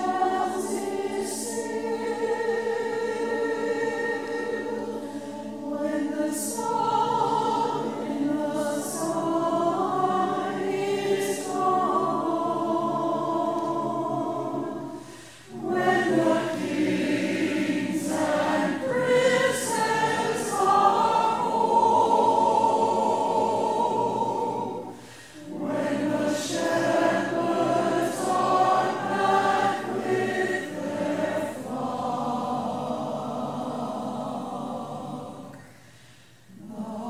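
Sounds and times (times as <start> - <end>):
choir singing held notes: 0.0 - 37.0.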